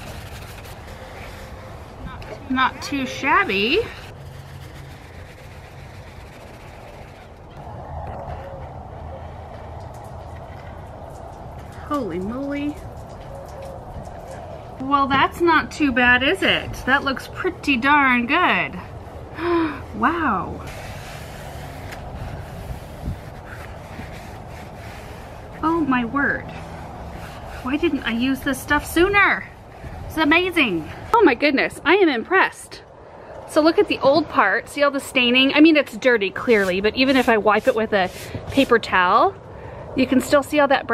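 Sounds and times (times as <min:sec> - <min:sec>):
sponge scrubbing: 0:00.0 - 0:01.9, 0:02.6 - 0:07.5, 0:20.7 - 0:25.9, 0:26.7 - 0:29.4, 0:36.4 - 0:39.0
paper towel wiping window box: 0:02.9 - 0:07.4, 0:20.7 - 0:25.6, 0:36.4 - 0:39.0.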